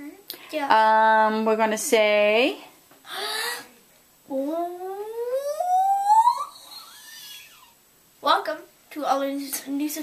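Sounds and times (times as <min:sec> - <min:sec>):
child's rising vocal glide: 0:04.3 - 0:07.7.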